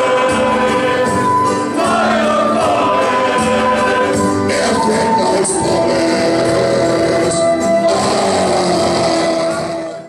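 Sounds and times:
men singing into microphones: 0.0 - 10.0.

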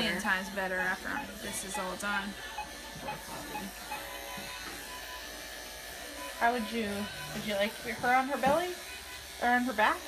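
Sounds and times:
electric clippers buzzing: 0.0 - 10.0.

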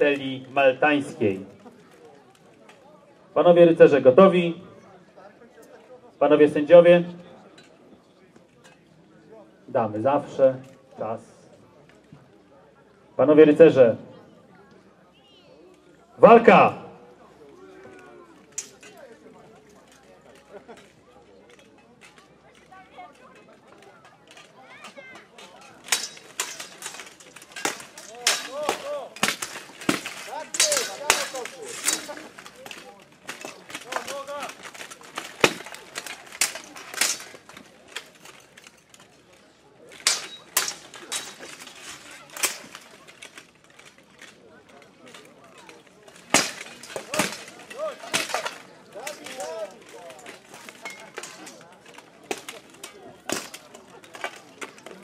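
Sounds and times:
swords clanging on armour: 24.3 - 39.1, 39.9 - 43.5, 45.2 - 55.0.

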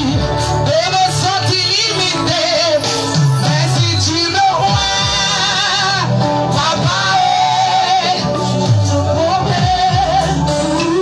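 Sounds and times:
gospel group singing with instruments: 0.0 - 11.0.

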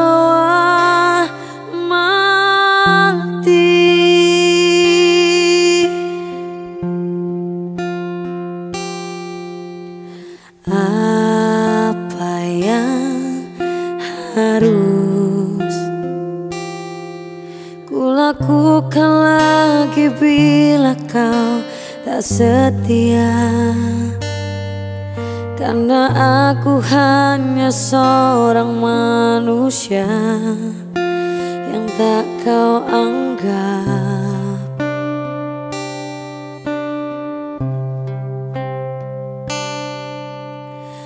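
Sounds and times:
woman singing: 0.0 - 7.4, 10.4 - 35.5
acoustic guitar ballad: 0.0 - 41.0.

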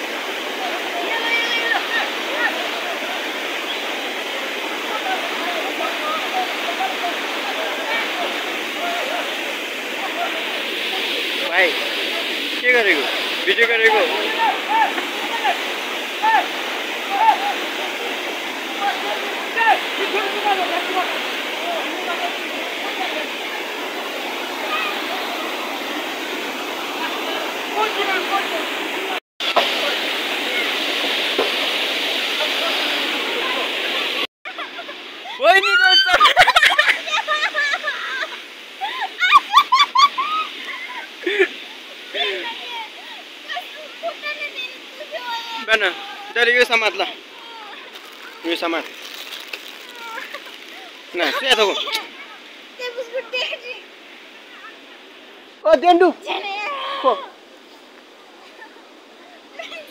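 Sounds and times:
stream rushing over rocks: 0.0 - 59.9.

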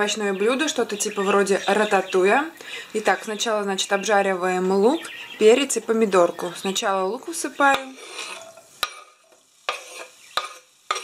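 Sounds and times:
onion rustling into pan: 7.6 - 11.0
knife scraping wooden board: 9.7 - 10.6.

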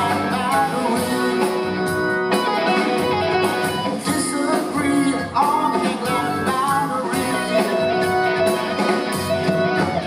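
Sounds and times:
electric guitar: 0.0 - 10.0
keyboards: 0.0 - 10.0
live rock band playing: 0.0 - 10.0.

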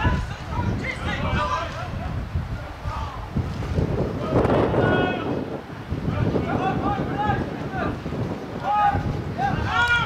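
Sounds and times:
wind buffeting microphone: 0.0 - 10.0
people shouting: 8.6 - 10.0.

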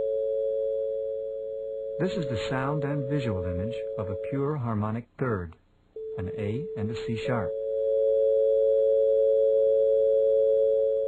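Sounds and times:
two steady pure tones: 0.0 - 4.7, 6.0 - 11.0.

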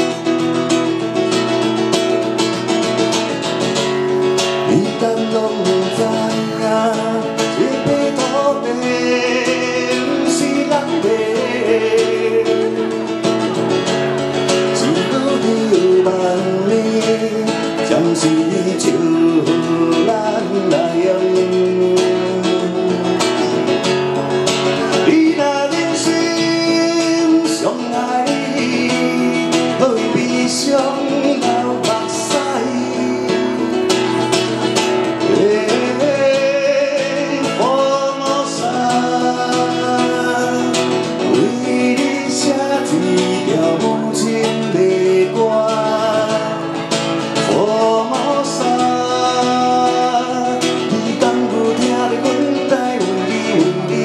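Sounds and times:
man singing: 0.0 - 54.0
nylon-string guitar strumming: 0.0 - 54.0.

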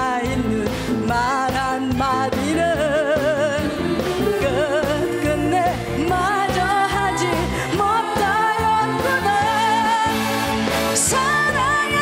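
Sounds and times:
live band accompaniment: 0.0 - 12.0
woman singing into microphone: 0.0 - 12.0.

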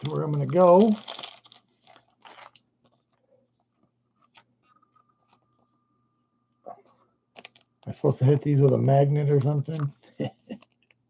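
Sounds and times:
faint steady high tone: 4.7 - 9.7.

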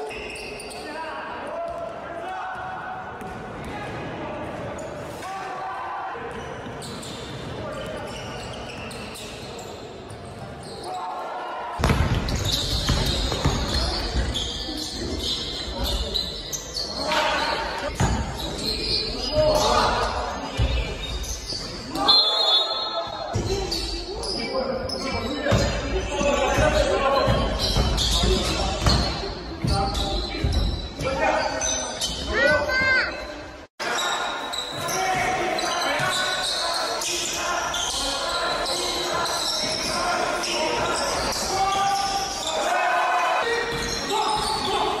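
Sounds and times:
players' voices: 0.0 - 45.0
basketball bouncing on court: 11.8 - 14.4.

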